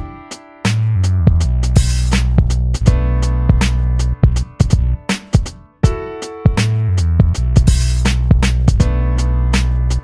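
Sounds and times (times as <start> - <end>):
held bass notes: 0.8 - 5.1, 6.6 - 10.0
drum beat: 1.3 - 9.1.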